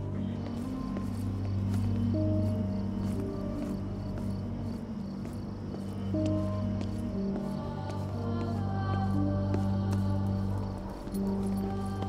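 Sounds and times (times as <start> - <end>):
crickets chirping: 0.0 - 12.0
sustained low music notes: 0.0 - 12.0.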